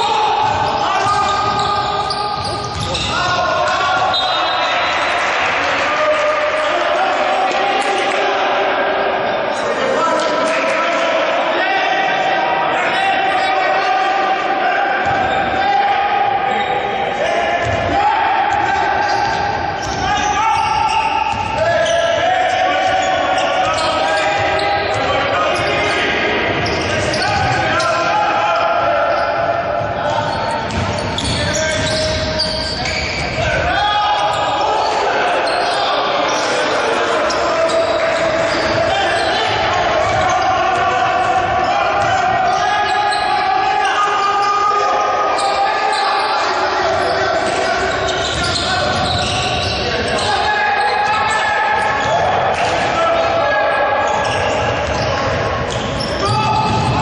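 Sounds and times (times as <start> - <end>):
indistinct raised voices: 0.0 - 57.0.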